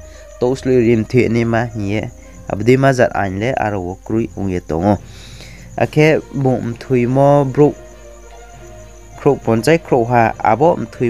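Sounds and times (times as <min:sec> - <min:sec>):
man talking: 0:00.4 - 0:05.1, 0:05.8 - 0:07.8, 0:09.2 - 0:11.0.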